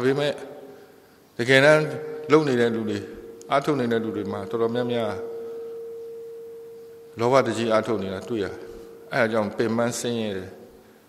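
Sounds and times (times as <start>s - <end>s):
person speaking: 1.4s - 5.6s, 7.1s - 10.6s
steady mid-pitched tone: 1.6s - 11.0s.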